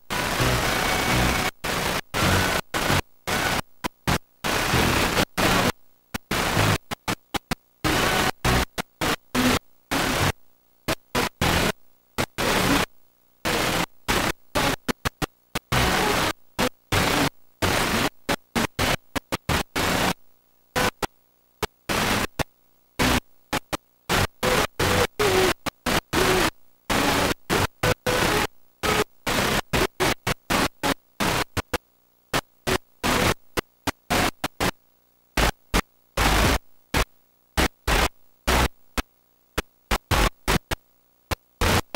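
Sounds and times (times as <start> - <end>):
videotape static hiss: 0.0 - 41.9.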